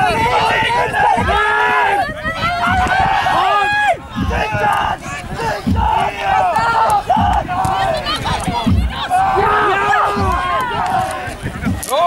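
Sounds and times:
low drum beat: 0.0s - 12.0s
young voices shouting and cheering: 0.0s - 12.0s.

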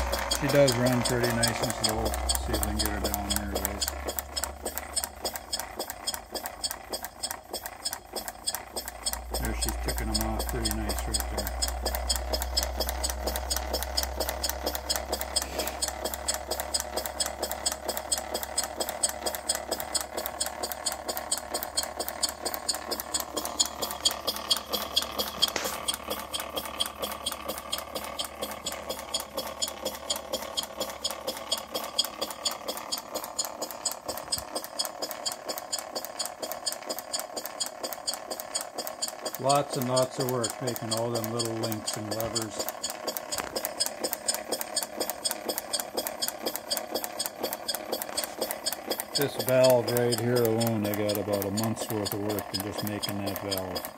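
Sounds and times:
model engine ticking: 0.0s - 53.9s.

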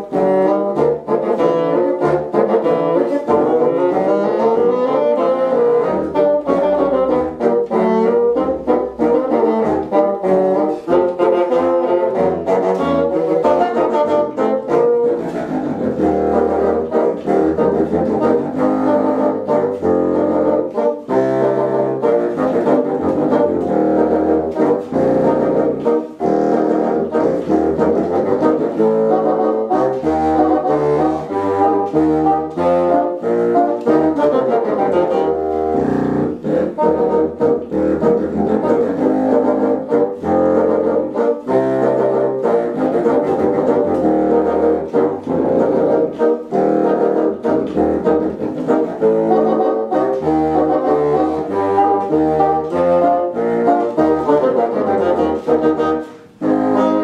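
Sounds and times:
brass ensemble playing: 0.0s - 57.0s.

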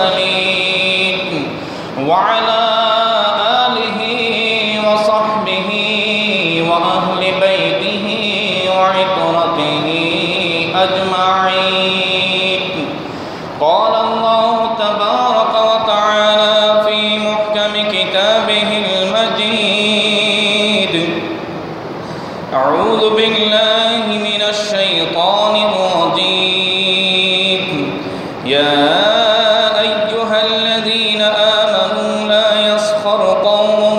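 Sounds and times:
man chanting melodically: 0.0s - 21.4s, 22.5s - 33.9s.

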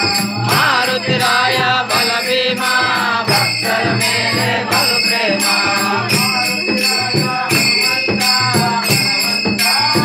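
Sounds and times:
group singing devotional song: 0.0s - 10.0s
jingling hand percussion: 0.0s - 10.0s.

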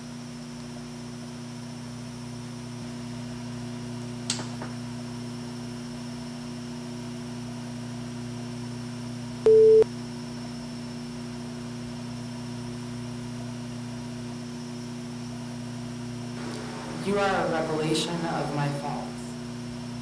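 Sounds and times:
low electrical hum: 0.0s - 20.0s
loud pure beep: 9.5s - 9.8s.

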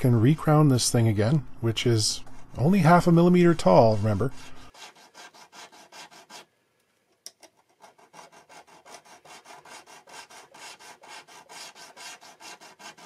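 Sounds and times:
file scraping on guitar fret: 7.8s - 13.0s.

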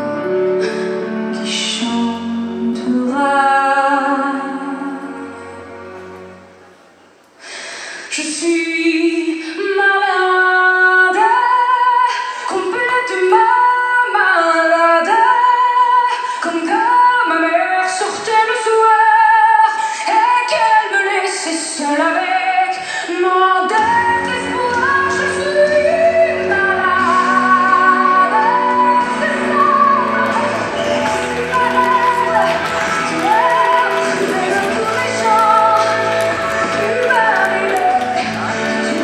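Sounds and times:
woman singing: 1.3s - 5.4s, 8.1s - 39.0s.

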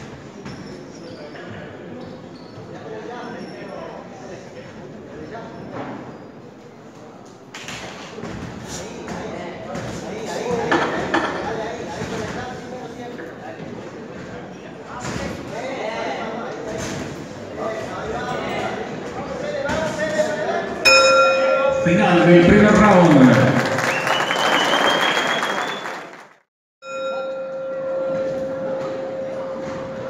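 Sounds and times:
bell ringing: 20.9s - 23.3s, 26.8s - 30.0s.

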